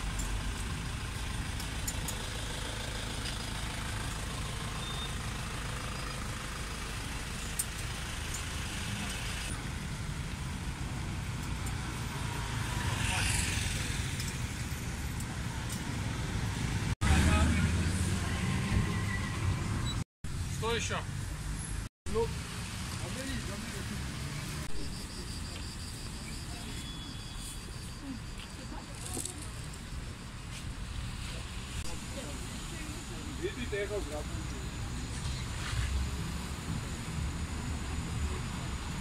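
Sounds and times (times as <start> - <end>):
road traffic: 0.0 - 39.0.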